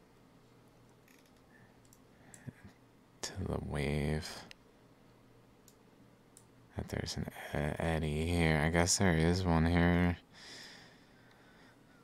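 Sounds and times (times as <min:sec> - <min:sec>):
computer mouse clicks: 0:00.9 - 0:02.5, 0:05.6 - 0:06.5
man speaking: 0:03.2 - 0:04.5, 0:06.8 - 0:10.2.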